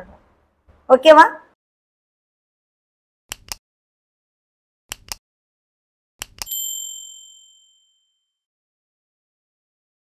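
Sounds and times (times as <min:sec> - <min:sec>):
mouse clicks: 0:03.3 - 0:03.6, 0:04.9 - 0:05.2, 0:06.2 - 0:06.5
high notification bell ding: 0:06.5 - 0:08.1.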